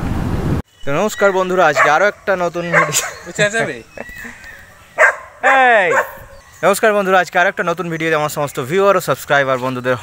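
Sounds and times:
man speaking: 0:00.8 - 0:03.9, 0:05.4 - 0:10.0.

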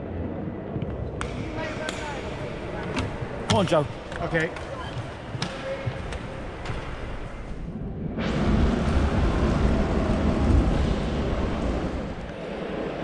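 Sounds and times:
wind rushing over microphone: 0:07.4 - 0:12.4.

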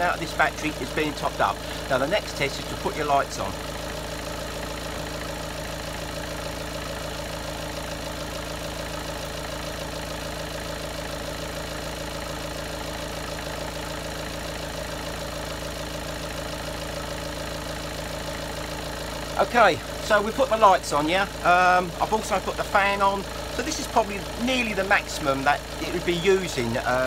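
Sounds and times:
diesel engine idling: 0:00.0 - 0:27.0.

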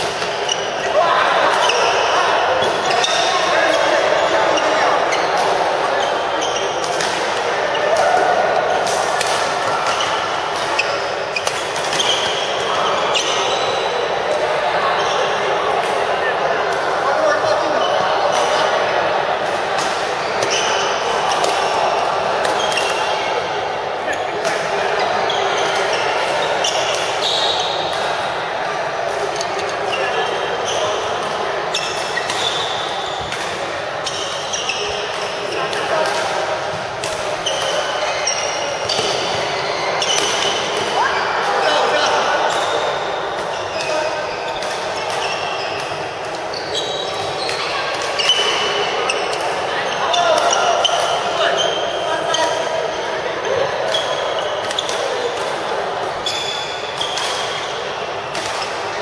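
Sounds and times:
rackets striking shuttlecock: 0:29.1 - 0:49.6, 0:56.9 - 0:58.8
shoe squeaks on court: 0:31.7 - 0:33.3, 0:37.2 - 0:40.7, 0:41.6 - 0:52.6, 0:56.2 - 0:57.8.

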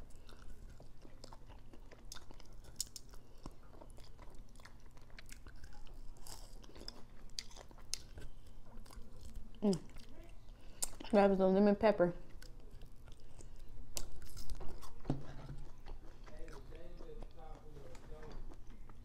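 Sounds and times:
person chewing meat off a bone: 0:00.0 - 0:11.1, 0:12.2 - 0:19.0.

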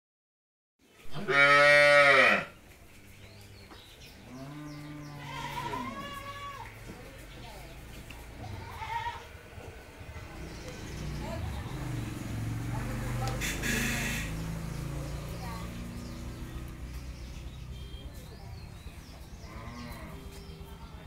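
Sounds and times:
cattle mooing: 0:01.2 - 0:02.5, 0:19.4 - 0:20.3.

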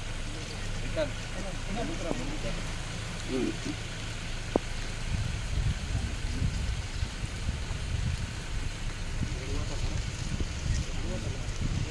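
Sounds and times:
rain hiss: 0:00.0 - 0:11.9
wind buffeting microphone: 0:04.3 - 0:11.9.

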